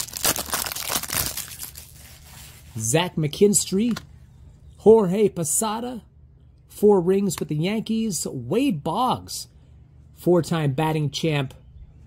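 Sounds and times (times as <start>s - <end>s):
foil wrapper tearing and crinkling: 0.0s - 2.6s.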